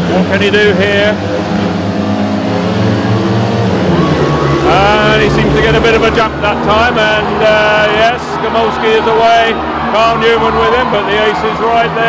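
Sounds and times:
motorcycle engines revving hard: 0.0s - 10.7s.

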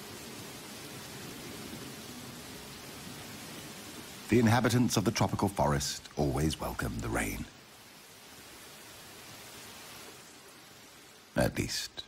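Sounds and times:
steady rain falling: 0.0s - 12.0s.

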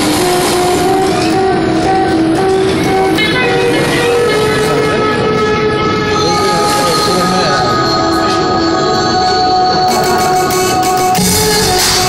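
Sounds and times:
held synth tone with overtones: 0.0s - 12.0s
synth melody: 0.0s - 12.0s.

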